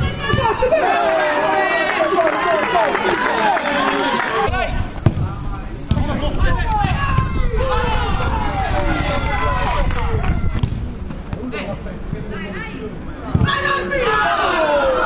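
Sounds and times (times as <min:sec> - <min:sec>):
men shouting: 0:13.6 - 0:15.0.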